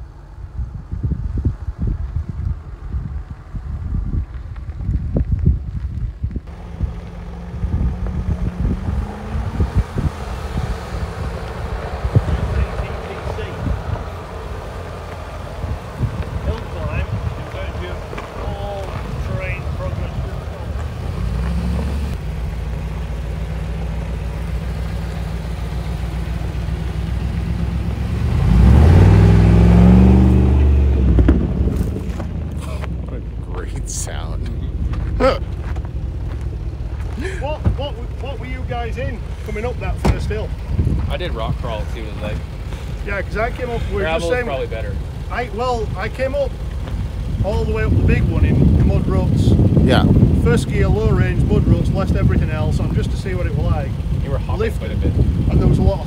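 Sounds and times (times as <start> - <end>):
engines climbing gravel track: 0.0 - 56.0
wind buffeting microphone: 0.1 - 22.2, 28.2 - 56.0
engine revving: 6.5 - 56.0.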